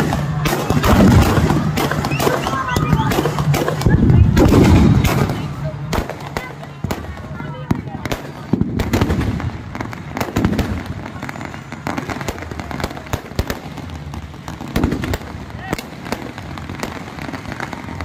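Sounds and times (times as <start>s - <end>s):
fireworks bangs and pops: 0.0s - 18.0s.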